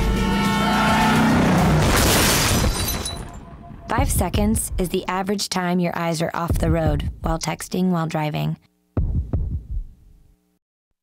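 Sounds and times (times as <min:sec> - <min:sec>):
deep thumps: 0:06.5 - 0:07.4, 0:09.0 - 0:09.9.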